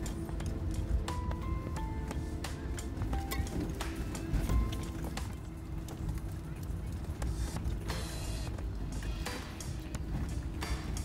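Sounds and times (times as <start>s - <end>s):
engine and drivetrain rumble: 0.0s - 11.0s.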